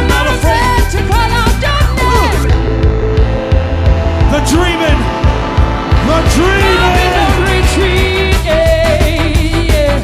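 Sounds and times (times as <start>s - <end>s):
heavy steady bass: 0.0s - 10.0s
live band music: 0.0s - 10.0s
pitched gliding tones: 2.2s - 8.8s.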